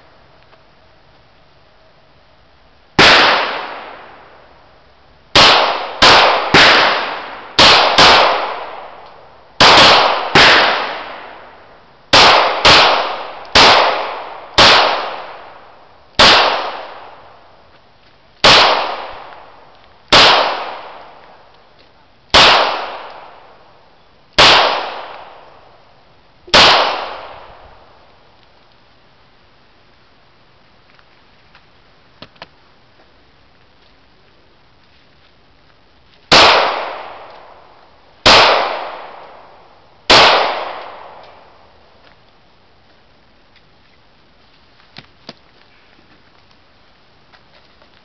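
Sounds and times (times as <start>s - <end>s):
pistol shots with echo: 3.0s - 4.2s, 5.4s - 9.0s, 9.6s - 11.4s, 12.1s - 15.6s, 16.2s - 17.2s, 18.4s - 21.4s, 22.3s - 23.6s, 24.4s - 25.6s, 26.5s - 27.6s, 36.3s - 37.6s, 38.2s - 39.5s, 40.1s - 41.6s.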